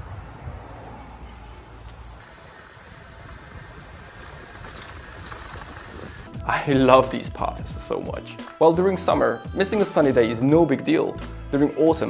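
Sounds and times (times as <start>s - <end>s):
bicycle tyre and wind noise: 0.0s - 6.3s.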